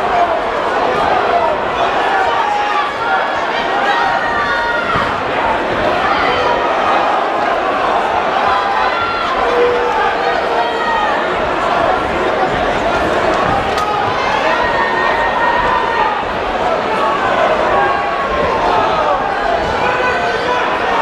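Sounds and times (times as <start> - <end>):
spectators shouting and chattering: 0.0 - 21.0.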